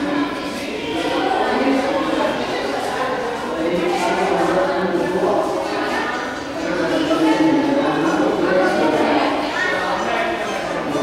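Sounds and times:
many voices overlapping: 0.0s - 11.0s.

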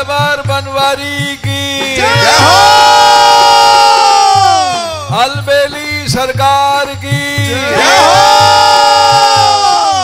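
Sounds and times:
rhythmic drum beat: 0.0s - 10.0s.

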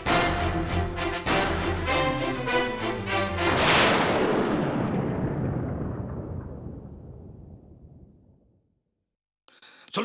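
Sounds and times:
dramatic boom sound effect: 3.5s - 8.4s.

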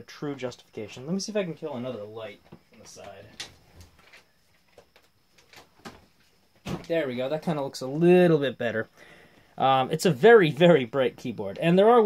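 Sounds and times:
man speaking: 0.0s - 3.4s, 6.7s - 8.9s, 9.6s - 12.0s.

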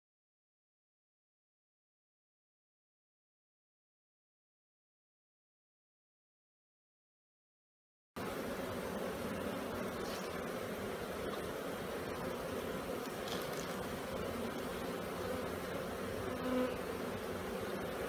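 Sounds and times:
honeybees buzzing: 8.2s - 18.0s.

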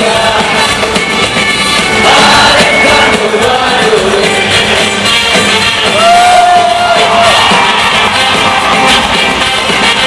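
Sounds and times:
audience singing and shouting: 0.0s - 10.0s
live rock band with horns: 0.0s - 10.0s.

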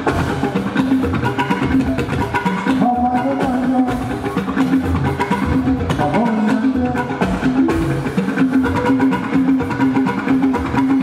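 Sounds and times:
hand drums and percussion: 0.0s - 11.0s.

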